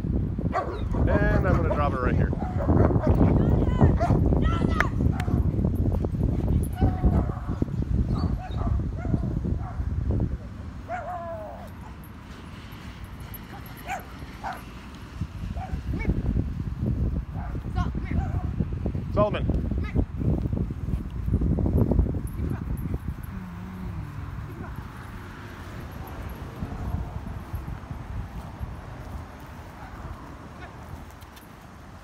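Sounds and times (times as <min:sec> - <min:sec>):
dogs barking and yipping: 0:00.5 - 0:04.3, 0:06.4 - 0:16.2, 0:17.3 - 0:18.6, 0:22.2 - 0:23.3, 0:24.3 - 0:27.6, 0:29.1 - 0:31.5.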